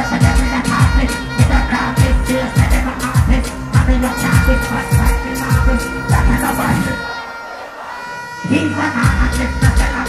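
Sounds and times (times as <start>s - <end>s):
bass-heavy dancehall beat: 0.0s - 10.0s
crowd noise: 0.0s - 10.0s.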